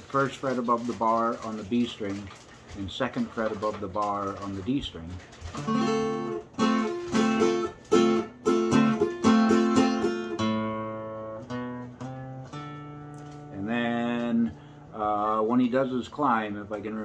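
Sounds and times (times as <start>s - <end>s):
acoustic guitar strumming: 5.5s - 15.4s.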